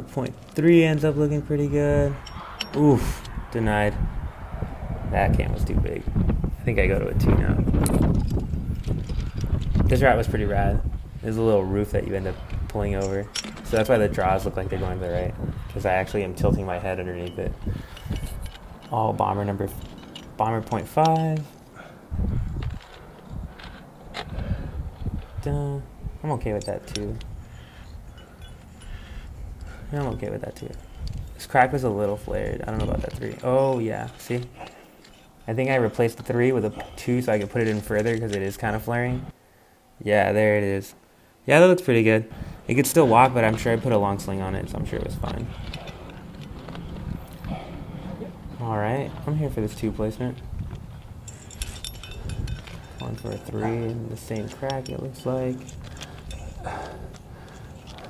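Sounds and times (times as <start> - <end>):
wind and handling rumble: 0.0 - 58.0
low rumble: 2.0 - 11.2
metal climbing gear clicks: 2.2 - 3.4, 7.7 - 10.3, 12.3 - 14.8, 15.5 - 21.8, 22.4 - 24.5, 26.3 - 38.8, 45.0 - 47.6, 50.4 - 58.0.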